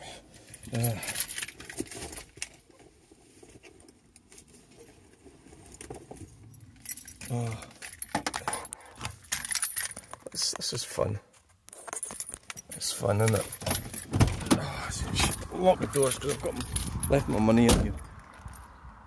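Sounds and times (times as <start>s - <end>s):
clicks and rattles of handling: 0.3s - 15.5s
car keys jangling: 0.4s - 2.6s, 5.5s - 10.5s, 11.7s - 18.7s
person murmuring: 7.3s - 7.8s.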